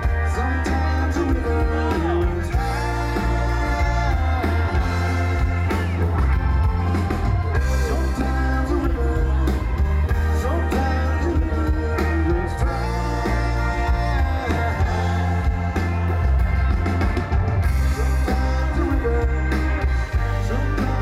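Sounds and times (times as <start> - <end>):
electric bass line: 0.0 - 21.0
electric guitar: 0.0 - 21.0
keyboard: 0.0 - 21.0.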